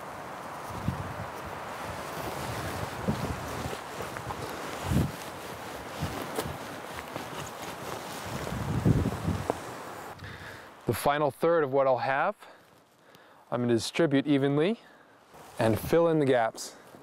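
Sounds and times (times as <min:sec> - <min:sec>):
wind blowing across microphone: 0:00.0 - 0:10.6.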